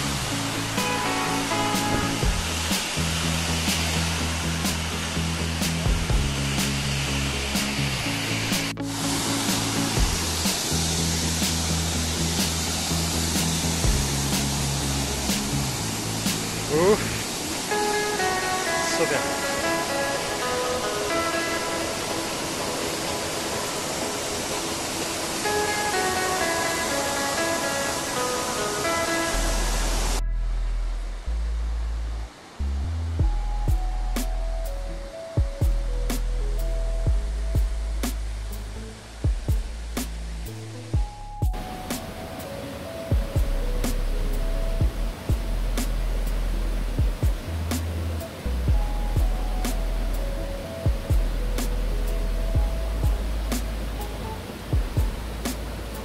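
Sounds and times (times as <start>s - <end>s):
waterfall rushing: 0.0s - 30.2s, 40.0s - 56.0s
background music: 0.0s - 56.0s.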